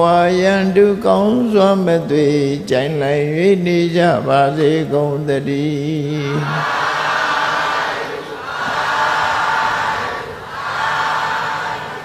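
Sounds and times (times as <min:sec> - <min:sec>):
congregation calling out in unison: 0:06.2 - 0:12.0.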